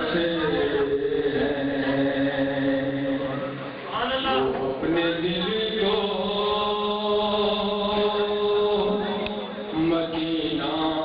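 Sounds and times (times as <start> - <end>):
man chanting into a microphone: 0.0 - 11.0.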